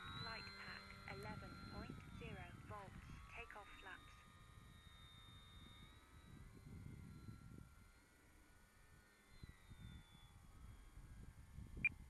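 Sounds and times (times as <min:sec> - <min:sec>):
faint low rumble: 0:00.0 - 0:04.2
thin high whine: 0:00.0 - 0:11.2.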